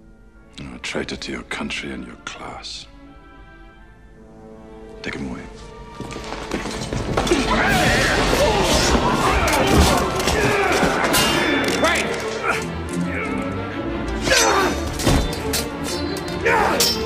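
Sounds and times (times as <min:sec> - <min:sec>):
soundtrack music: 0:00.0 - 0:17.0
thuds and whacks of fighting: 0:07.1 - 0:11.3
men shouting and grunting: 0:07.2 - 0:15.3, 0:16.2 - 0:17.0.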